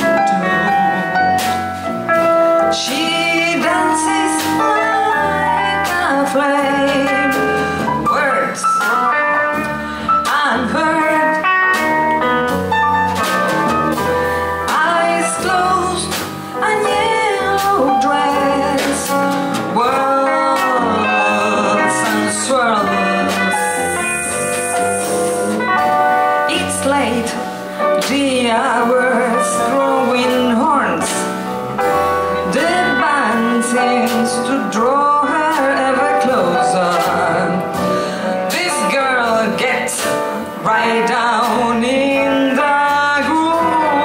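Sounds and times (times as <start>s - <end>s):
woman singing lead vocal: 0.0s - 1.6s, 2.5s - 11.9s, 13.1s - 31.4s, 32.4s - 44.0s
acoustic bass guitar: 0.0s - 44.0s
drums: 0.0s - 44.0s
piano: 0.0s - 44.0s.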